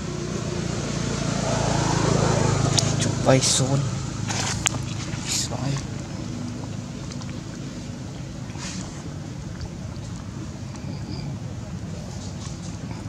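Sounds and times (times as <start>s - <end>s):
steady low hum: 0.0s - 10.8s.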